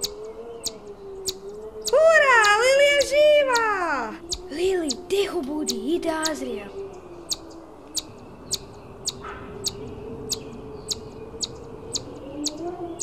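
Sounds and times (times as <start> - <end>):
small bird chirping: 0.0 - 13.0.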